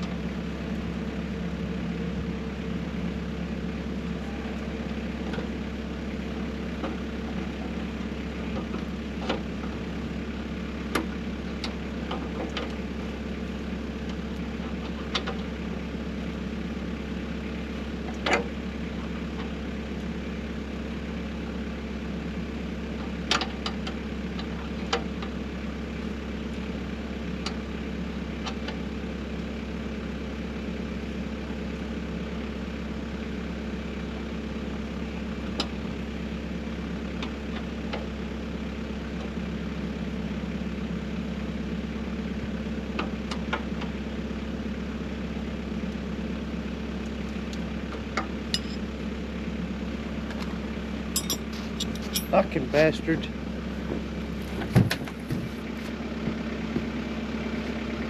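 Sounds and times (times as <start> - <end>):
snow blower engine idling: 0.0 - 58.0
tools clicking on metal: 51.2 - 52.3.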